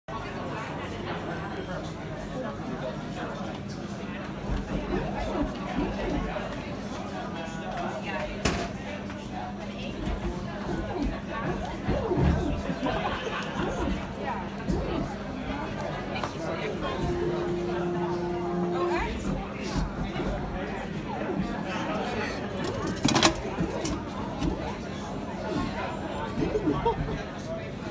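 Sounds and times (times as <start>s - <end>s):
murmur of voices: 0.1s - 27.9s.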